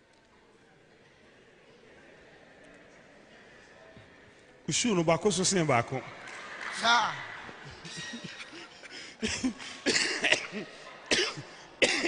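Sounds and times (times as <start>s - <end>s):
man laughing: 7.8s - 9.8s.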